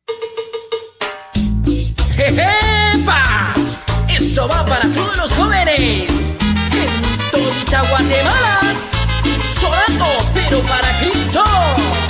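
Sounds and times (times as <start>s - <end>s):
metallic percussion strikes: 0.1s - 3.0s
band with bass and drums: 1.4s - 12.0s.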